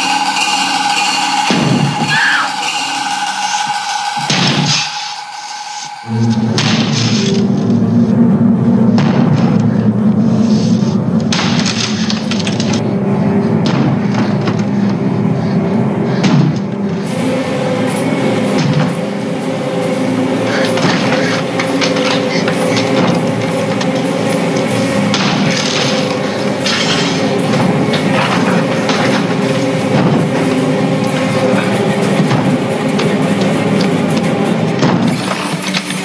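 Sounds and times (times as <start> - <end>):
dissonant orchestral horror music: 0.0 - 36.0
droning film score: 0.0 - 36.0
knocks and thuds: 4.2 - 5.0, 6.4 - 7.8, 8.8 - 10.2, 10.8 - 12.9, 13.5 - 15.2, 16.1 - 17.1, 18.5 - 19.1, 20.7 - 35.7.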